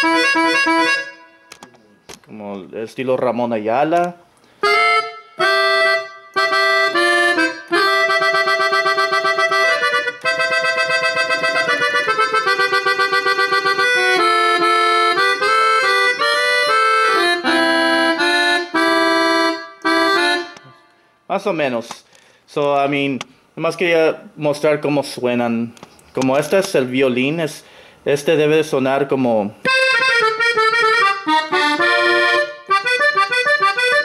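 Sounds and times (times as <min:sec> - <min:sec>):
accordion melody: 0:00.0 - 0:02.0, 0:04.5 - 0:21.2, 0:29.6 - 0:34.0.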